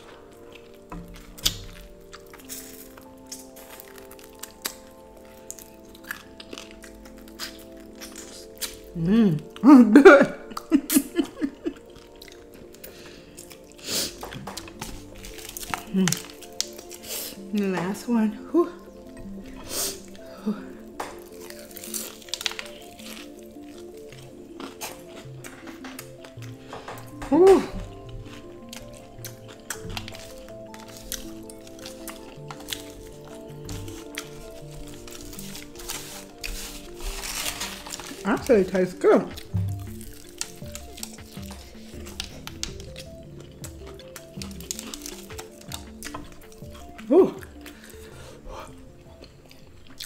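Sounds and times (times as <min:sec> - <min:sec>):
chewing and crunchy bites: 0:00.0 - 0:09.7, 0:10.5 - 0:18.1, 0:18.8 - 0:50.0
soft background music: 0:00.0 - 0:50.0.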